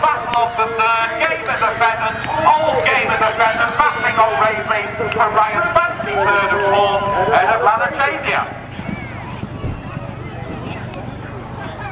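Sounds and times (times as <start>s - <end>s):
man commentating over public address: 0.0s - 8.7s
faint voices: 0.0s - 11.9s.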